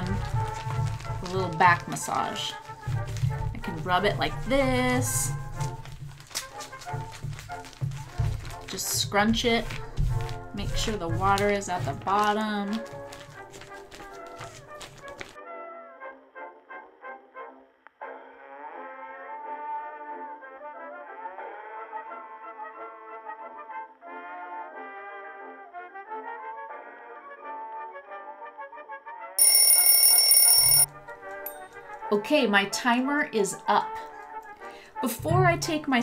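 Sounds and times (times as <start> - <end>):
background music: 0.0 - 29.3, 30.9 - 36.0
kitchen timer bell ringing: 29.4 - 30.9, 31.5 - 31.8.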